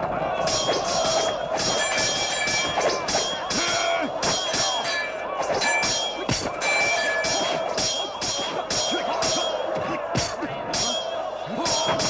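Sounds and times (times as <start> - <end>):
background din: 0.1 - 12.0
metal weapons clashing: 0.4 - 12.0.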